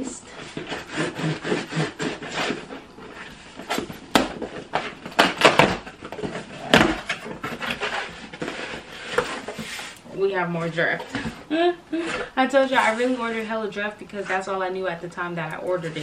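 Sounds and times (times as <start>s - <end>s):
cardboard tearing and scraping: 0.3s - 10.0s.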